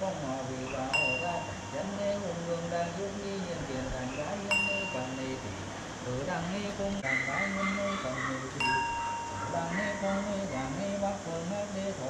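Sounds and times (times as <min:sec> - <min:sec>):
person chanting prayers: 0:00.0 - 0:12.0
small metal bell ringing: 0:00.9 - 0:01.8, 0:04.5 - 0:05.3, 0:08.6 - 0:09.9.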